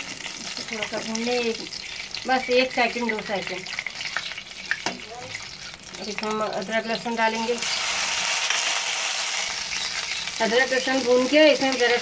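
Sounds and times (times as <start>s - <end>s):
paste sizzling in hot oil: 0.0s - 12.0s.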